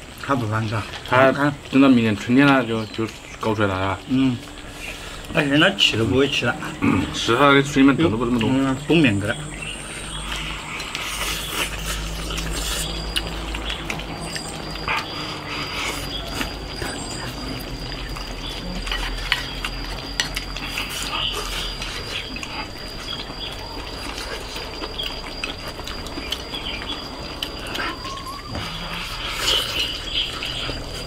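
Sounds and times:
people chewing and slurping: 0:00.0 - 0:31.0
thin steady high tone: 0:00.0 - 0:31.0.

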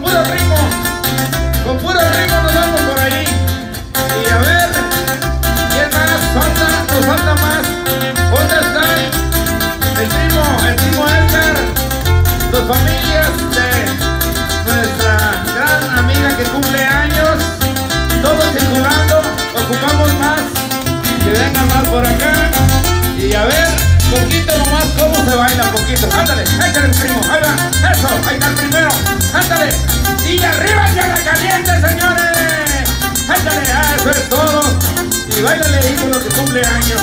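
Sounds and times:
live band playing dance music: 0:00.0 - 0:37.0
pulsing bass beat: 0:00.0 - 0:37.0.

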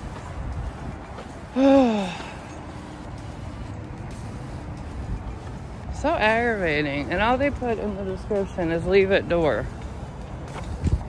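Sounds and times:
wind buffeting microphone: 0:00.0 - 0:01.6, 0:02.2 - 0:11.0.

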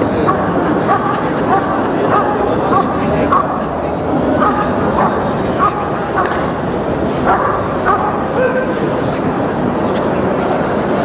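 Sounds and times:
dog barking: 0:00.2 - 0:03.6, 0:04.4 - 0:06.3, 0:07.2 - 0:08.7.

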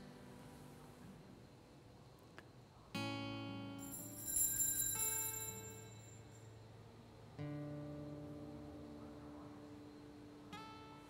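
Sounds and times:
altar bells ringing: 0:03.8 - 0:06.5.

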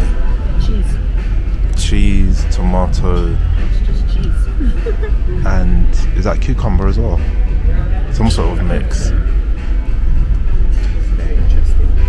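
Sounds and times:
music with deep bass: 0:00.0 - 0:12.0
quiet talking: 0:00.0 - 0:12.0.

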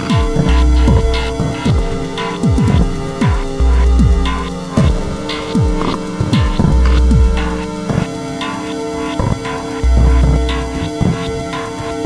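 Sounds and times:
deep kick drum: 0:00.0 - 0:07.9, 0:09.8 - 0:11.0
held synth tones: 0:00.0 - 0:12.0
low sub-bass note: 0:00.1 - 0:07.9, 0:09.8 - 0:10.9.

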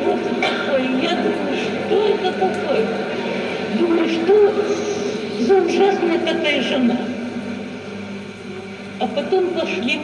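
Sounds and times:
low even hum: 0:00.0 - 0:10.0.

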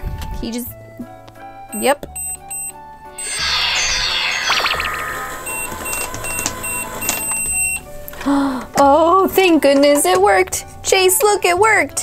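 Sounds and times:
quick electronic beeps: 0:02.6 - 0:07.5
electronic cooking jingle: 0:03.2 - 0:07.7.

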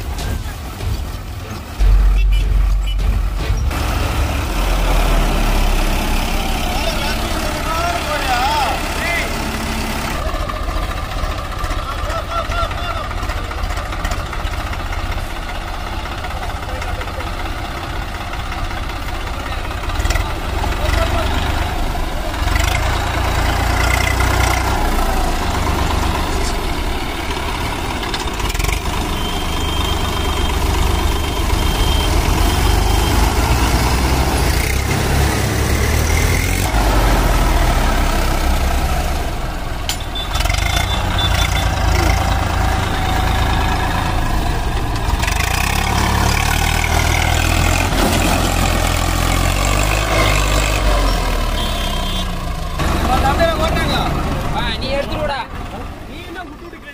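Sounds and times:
tractor diesel engine running: 0:00.0 - 0:56.9.

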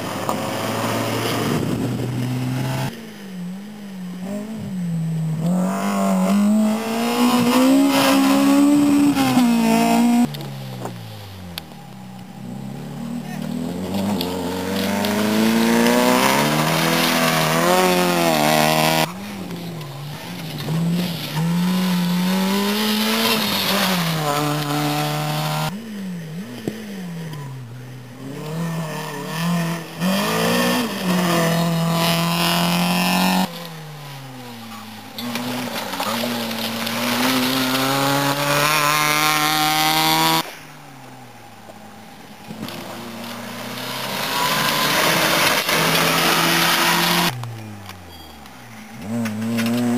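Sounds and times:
rally car engines revving past: 0:00.0 - 0:49.9.

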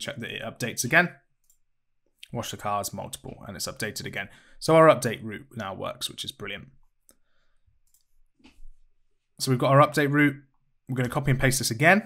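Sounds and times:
computer clicks: 0:07.8 - 0:08.1.

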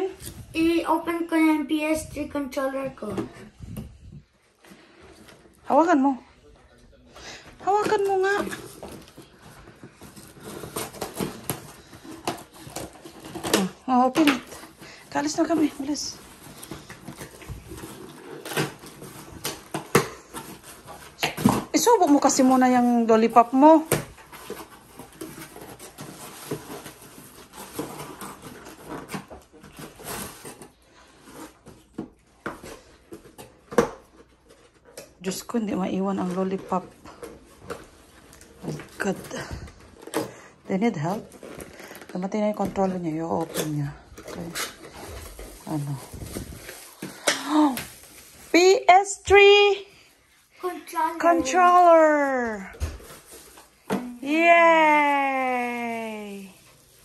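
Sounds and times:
cardboard box tearing and rustling: 0:08.1 - 0:14.8, 0:15.4 - 0:22.8, 0:23.8 - 0:34.7, 0:41.1 - 0:48.5.

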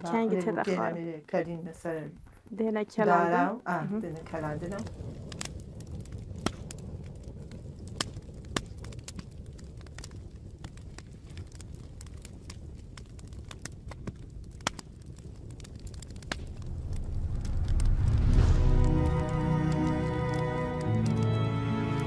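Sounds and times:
wood fire crackling and popping: 0:00.0 - 0:22.0
steady low rumble: 0:15.2 - 0:20.8.

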